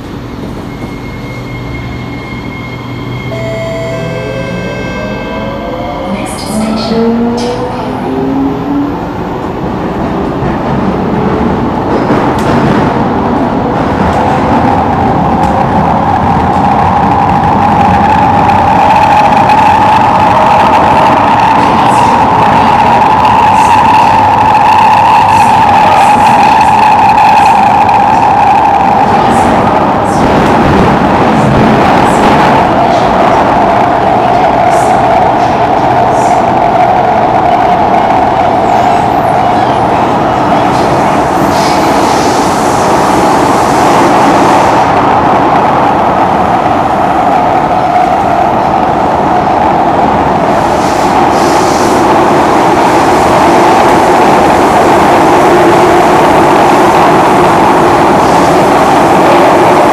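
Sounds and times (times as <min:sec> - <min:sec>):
train wheels roaring on rails: 0:00.0 - 0:59.9.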